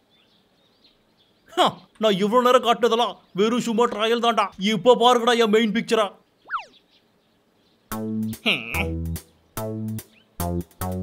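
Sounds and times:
cartoon pitch glide: 6.5 - 6.8.

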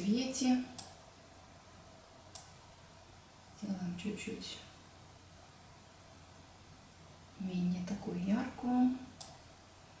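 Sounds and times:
computer mouse click: 0.7 - 1.0, 2.3 - 2.6, 9.2 - 9.4.

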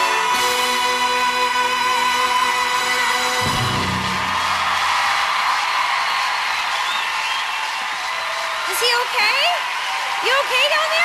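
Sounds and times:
audience cheering and applauding: 0.0 - 11.0
music chord: 0.3 - 5.1.

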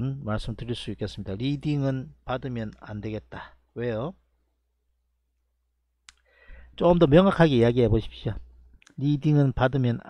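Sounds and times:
man speaking: 0.0 - 4.2, 6.8 - 10.0.

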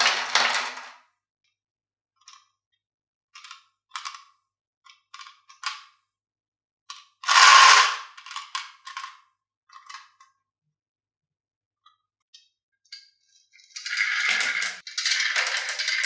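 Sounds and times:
marbles rattling in a glass jar: 7.3 - 8.1, 13.6 - 16.0.

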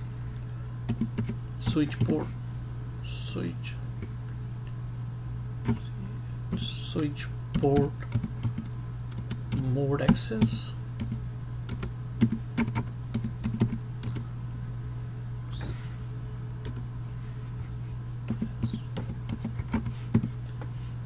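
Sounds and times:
steady low hum: 0.0 - 21.0
keyboard typing: 0.9 - 2.2, 7.6 - 14.2, 18.3 - 20.4.

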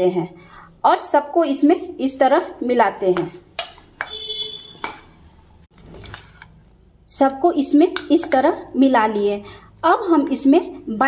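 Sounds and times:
metal spoon knocking on steel bowl: 3.2 - 5.2.

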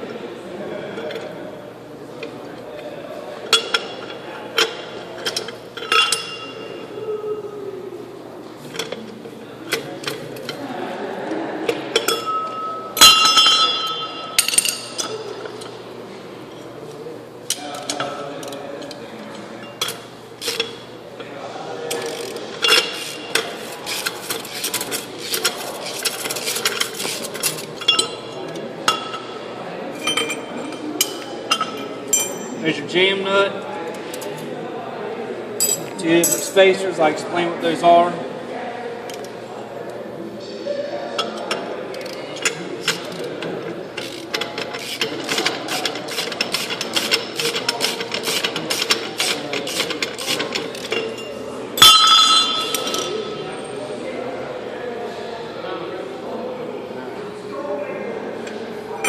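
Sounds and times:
loud metallic clang: 51.8 - 53.4.

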